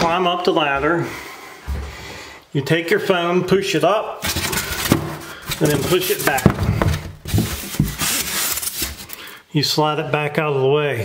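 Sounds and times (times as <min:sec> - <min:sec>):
foam board scraping on wood: 0:04.2 - 0:09.2.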